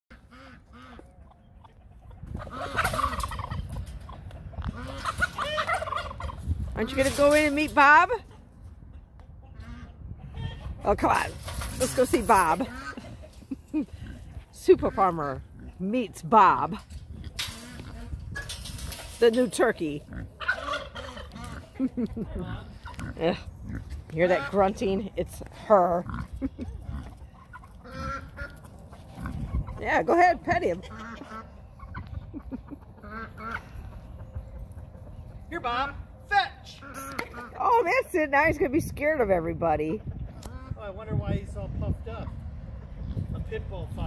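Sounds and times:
turkey gobbling: 0:00.1 - 0:06.5, 0:12.3 - 0:13.7, 0:20.4 - 0:23.0, 0:26.4 - 0:29.8, 0:30.8 - 0:34.8
pig grunting: 0:22.5 - 0:24.6, 0:25.6 - 0:28.5.

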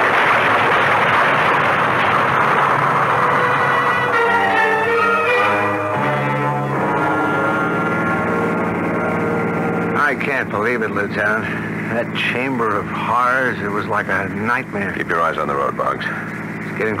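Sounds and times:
loud rushing fire noise: 0:00.0 - 0:17.0
orchestral brass chords: 0:03.2 - 0:10.1.

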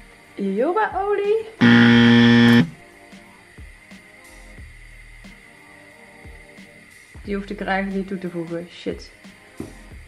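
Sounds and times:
quiet background music: 0:00.0 - 0:10.0
game show wrong answer buzzer: 0:01.6 - 0:02.8.

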